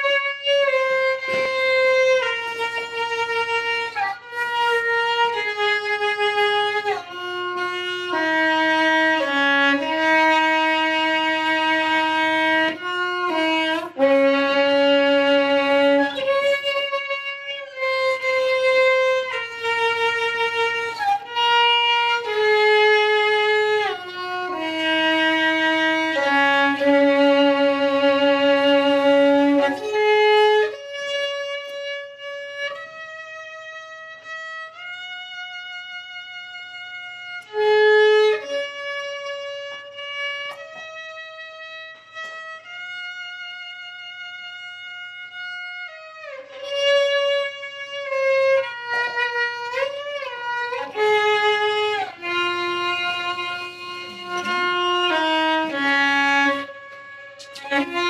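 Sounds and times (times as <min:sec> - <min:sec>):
solo violin melody: 0:00.0 - 0:58.0.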